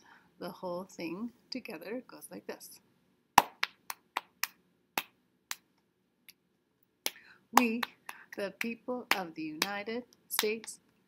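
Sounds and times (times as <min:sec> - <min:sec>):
body-percussion pats: 0:03.4 - 0:05.7, 0:07.0 - 0:09.8
hand claps: 0:03.4 - 0:05.7, 0:07.1 - 0:09.8.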